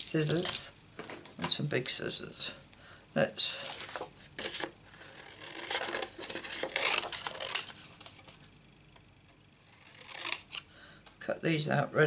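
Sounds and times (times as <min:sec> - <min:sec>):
scissors cutting cardstock: 0:04.4 - 0:08.2, 0:09.6 - 0:10.6.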